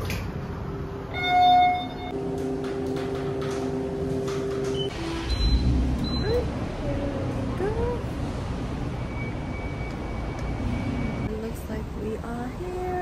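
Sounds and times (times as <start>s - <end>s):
elevator chime: 4.7s - 6.5s.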